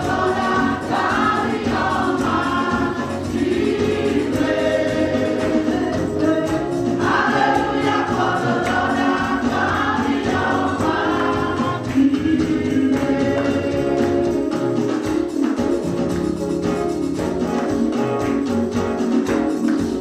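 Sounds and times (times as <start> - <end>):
women's gospel choir singing: 0.0 - 15.6
steady beat: 0.0 - 20.0.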